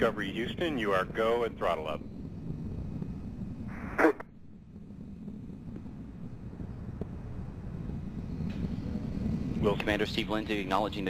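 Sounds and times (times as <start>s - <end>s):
rocket rumbling: 0.0s - 11.0s.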